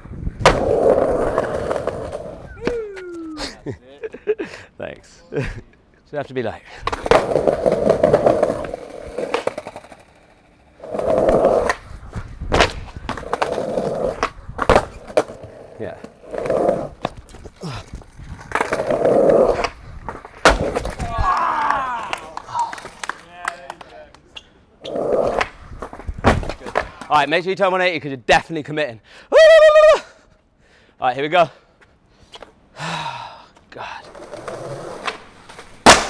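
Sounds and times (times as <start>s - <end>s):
skateboard wheels rolling on stone: 0.0s - 3.3s, 6.8s - 23.2s, 24.8s - 27.3s, 34.0s - 36.0s
skateboard tail popping: 0.4s - 3.4s, 6.8s - 21.5s, 25.0s - 27.1s, 34.4s - 36.0s
skateboard slapping down on stone: 18.4s - 21.4s, 34.4s - 36.0s.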